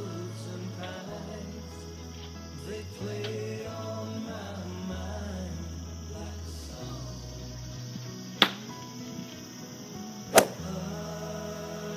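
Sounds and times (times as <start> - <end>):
background music: 0.0 - 11.9
golf club striking ball: 10.3 - 10.6.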